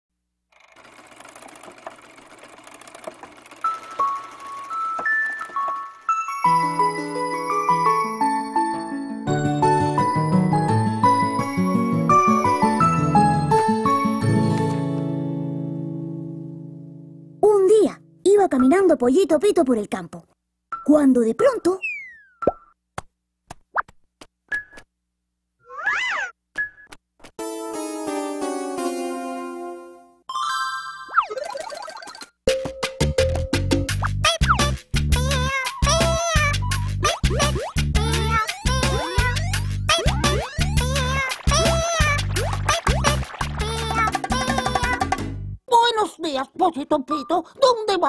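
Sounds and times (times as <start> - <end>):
fast dense clattering rattle: 0.5 - 6.1
animated film music: 0.5 - 16.4, 27.4 - 48.0.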